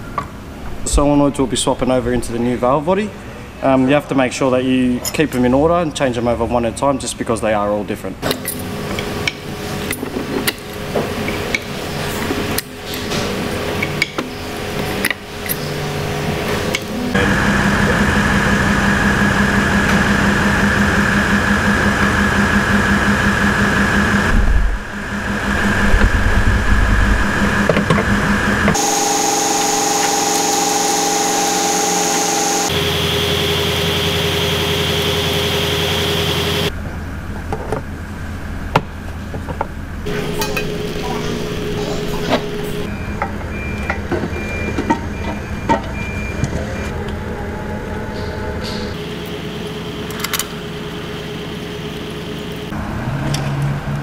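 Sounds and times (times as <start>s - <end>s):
machine droning: 8.2s - 54.0s.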